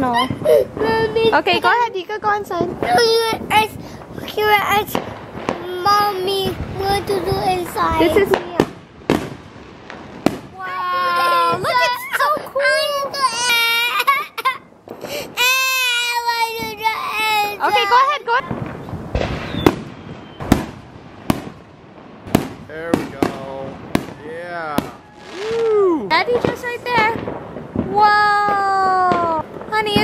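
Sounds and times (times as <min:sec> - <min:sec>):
toddler crying: 0:00.0 - 0:01.4, 0:10.6 - 0:17.8
fireworks popping and banging: 0:00.0 - 0:30.0.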